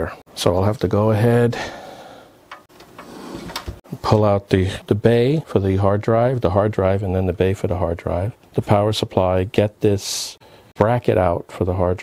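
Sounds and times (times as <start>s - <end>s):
pc case handling rubbing: 2.7s - 3.8s.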